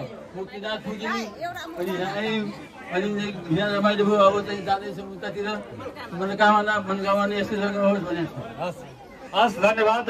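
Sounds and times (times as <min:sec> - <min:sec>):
crowd chattering: 0:00.0 - 0:10.0
man speaking into microphone: 0:00.0 - 0:10.0.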